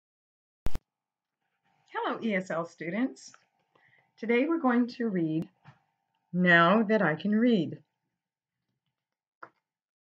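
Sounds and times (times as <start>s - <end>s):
woman speaking: 1.9s - 3.4s, 4.2s - 5.6s, 6.3s - 7.9s.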